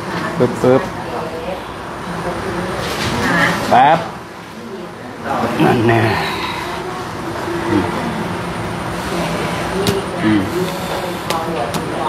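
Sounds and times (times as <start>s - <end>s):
steady background noise: 0.0s - 12.0s
low voice fragments: 9.9s - 11.4s.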